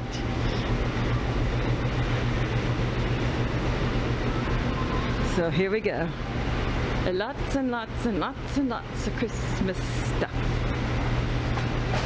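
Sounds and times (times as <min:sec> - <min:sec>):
constant low hum: 0:00.0 - 0:12.0
low rumble and hiss: 0:00.0 - 0:12.0.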